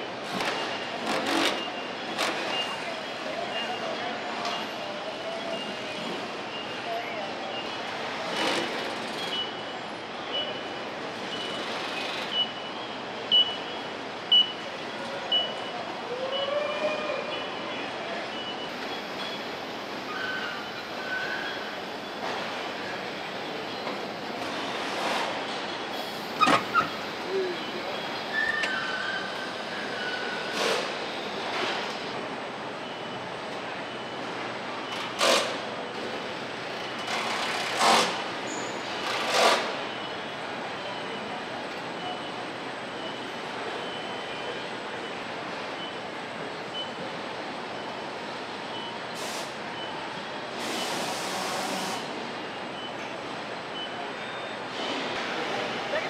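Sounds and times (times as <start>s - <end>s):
factory machinery: 0.0s - 16.0s, 17.2s - 56.0s.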